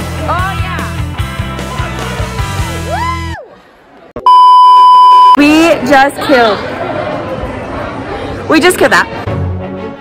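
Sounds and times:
censor bleep: 0:04.2 - 0:05.4.

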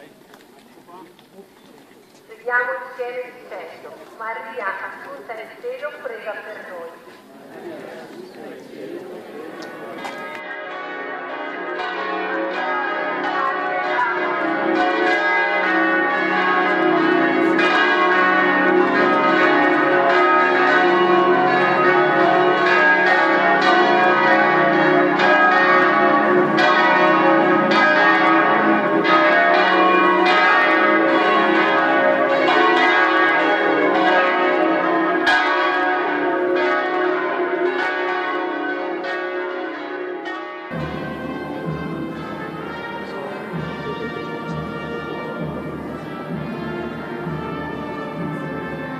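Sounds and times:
church bells pealing: 0:02.3 - 0:48.9.

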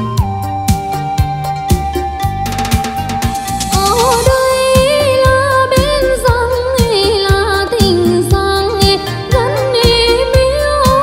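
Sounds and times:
bass line: 0:00.0 - 0:11.0.

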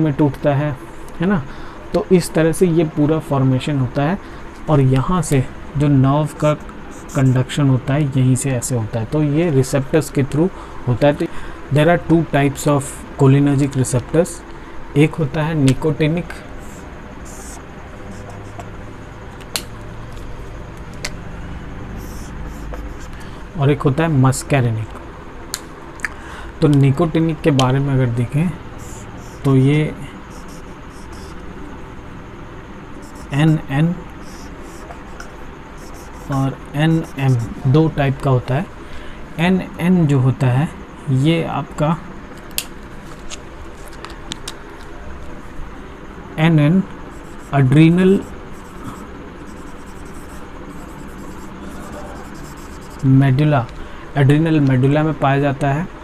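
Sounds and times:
marker scratching on whiteboard: 0:06.6 - 0:07.5, 0:16.6 - 0:18.8, 0:22.0 - 0:23.2, 0:28.8 - 0:29.6, 0:30.3 - 0:31.4, 0:33.0 - 0:37.6, 0:47.2 - 0:53.2.

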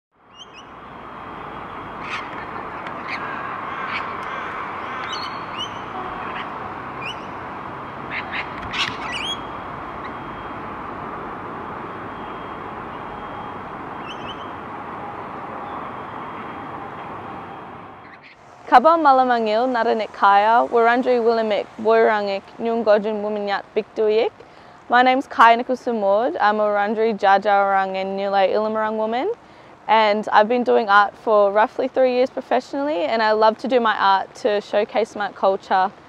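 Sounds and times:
outdoor background noise: 0:00.1 - 0:36.0
birds squawking: 0:01.9 - 0:10.4, 0:14.0 - 0:14.6.

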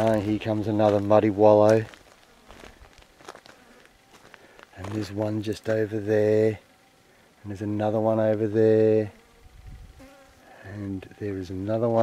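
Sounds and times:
footsteps on gravel: 0:00.0 - 0:06.0
insects buzzing: 0:00.0 - 0:12.0.

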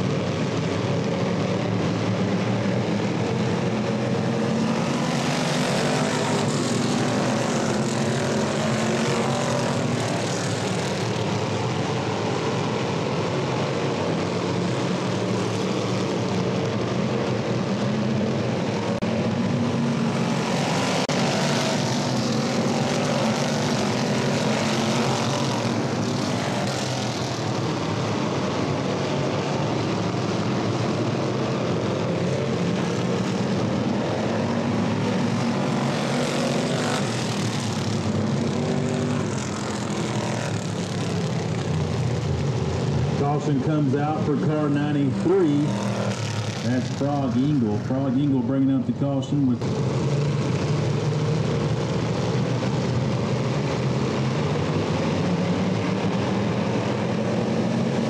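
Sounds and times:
race car engines running hard: 0:00.0 - 0:58.0.

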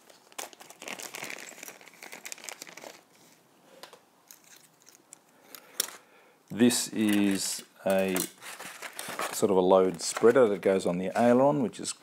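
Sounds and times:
plastic bag crinkling: 0:00.0 - 0:03.4, 0:07.0 - 0:11.3.

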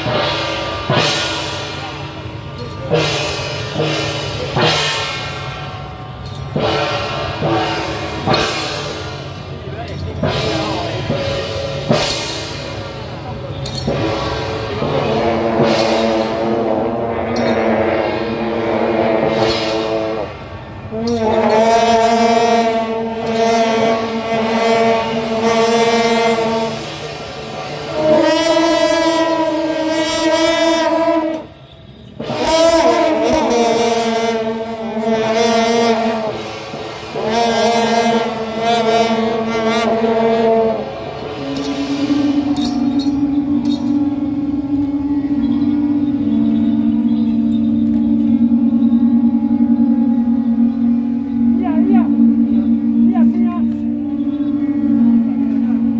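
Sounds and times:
brass horns blowing long blasts: 0:00.0 - 0:55.9.

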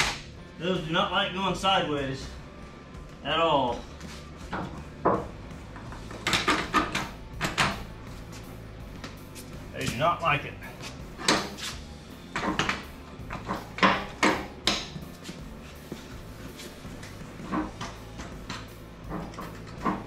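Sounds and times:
metal clunks and scrapes on concrete: 0:12.3 - 0:15.0, 0:17.4 - 0:20.0.

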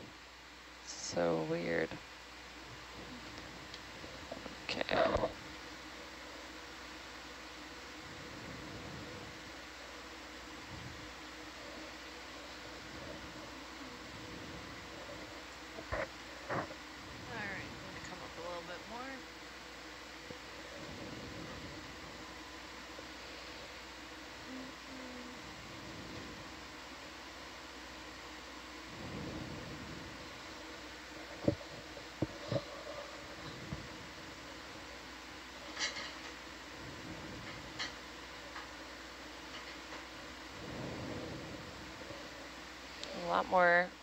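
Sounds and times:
equipment fan hum: 0:00.0 - 0:44.0.

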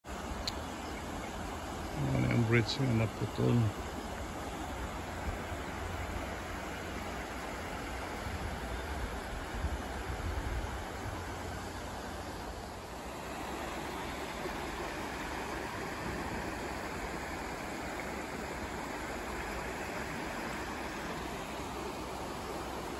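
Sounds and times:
river water rushing over rocks: 0:00.1 - 0:22.9.

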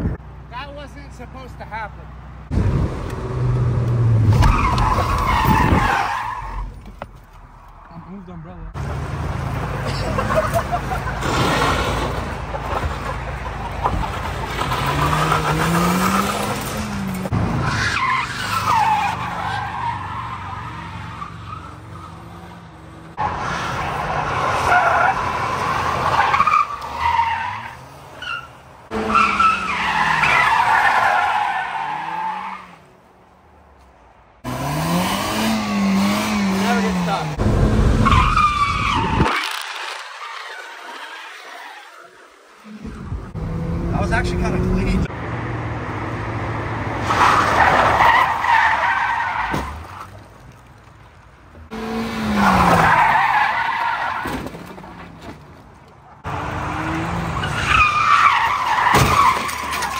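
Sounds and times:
car engine revving hard: 0:34.4 - 0:38.0.

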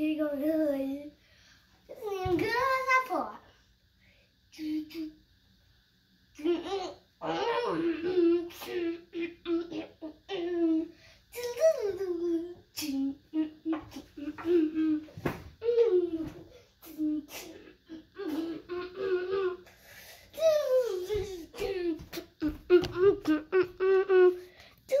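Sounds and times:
young boy talking: 0:00.0 - 0:01.1, 0:01.9 - 0:03.5, 0:04.6 - 0:05.2, 0:11.4 - 0:13.8, 0:20.4 - 0:21.8.

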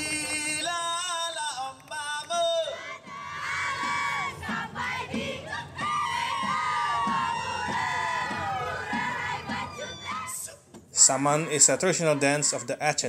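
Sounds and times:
group chanting and calling: 0:00.0 - 0:13.0.

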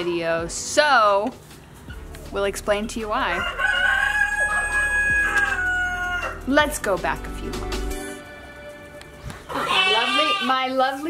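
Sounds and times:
rooster crowing: 0:03.4 - 0:06.4.

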